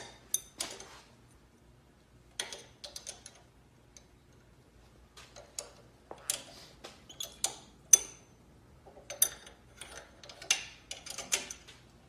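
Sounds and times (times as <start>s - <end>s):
metallic clicks and rattles: 2.3s - 4.5s, 5.2s - 6.5s, 7.1s - 8.3s, 8.9s - 11.9s.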